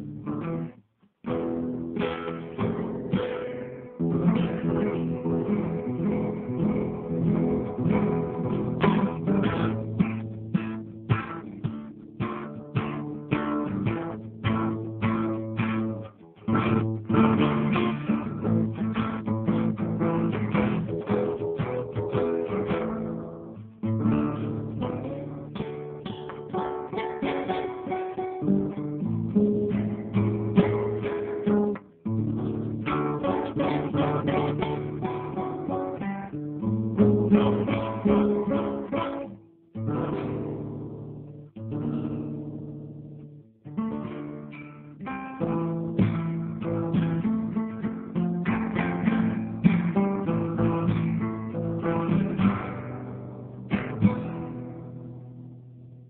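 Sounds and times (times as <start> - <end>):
guitar playing plucked notes and chords: 0.0 - 56.0.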